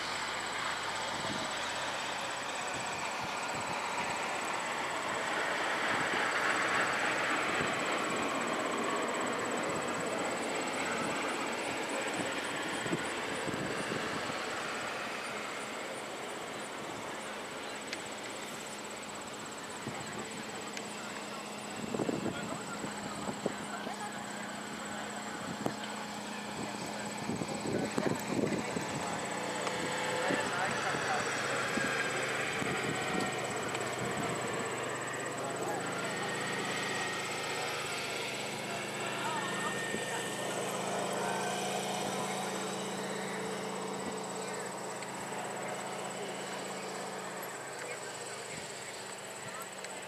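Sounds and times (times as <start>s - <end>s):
distant people talking: 0.0s - 50.0s
outdoor background hum: 0.0s - 50.0s.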